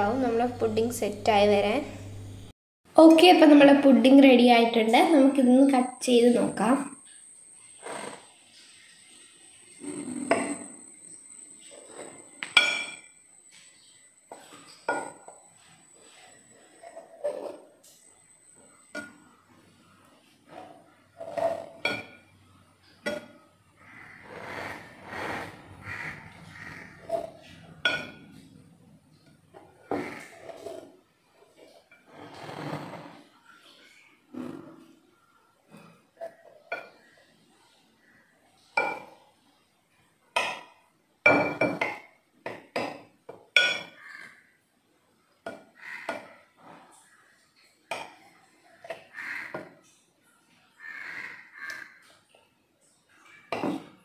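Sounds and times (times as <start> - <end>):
knife clinking and scraping on glass: 9.8 - 10.8, 11.6 - 15.3, 27.1 - 28.5, 43.6 - 44.0.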